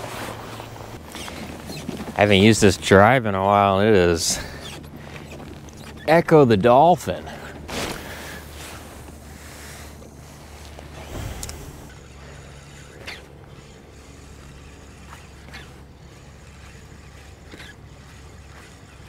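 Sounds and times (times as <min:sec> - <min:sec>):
short squeaks: 0:00.0 - 0:06.6, 0:07.3 - 0:19.0
fishing reel cranking: 0:09.3 - 0:19.0.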